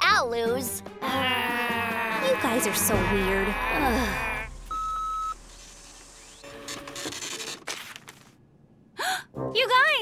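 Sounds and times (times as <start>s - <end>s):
short electronic beep: 4.7s - 5.4s.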